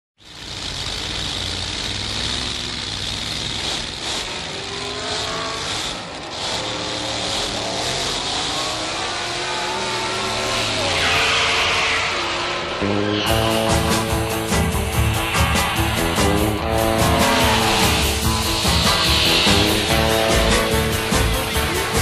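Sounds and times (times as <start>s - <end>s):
engine revving: 0.2s - 22.0s
tire squeal: 0.2s - 22.0s.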